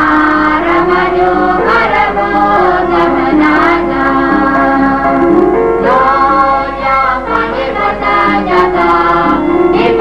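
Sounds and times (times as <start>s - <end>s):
choir singing: 0.0s - 10.0s
music accompaniment: 0.0s - 10.0s.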